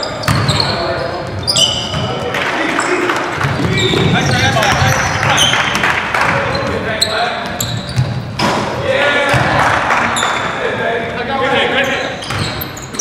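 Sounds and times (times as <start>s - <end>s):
sneakers squeaking: 0.0s - 9.5s, 10.1s - 10.6s, 11.5s - 13.0s
basketball bouncing: 0.2s - 0.6s, 3.3s - 6.7s, 7.4s - 8.5s.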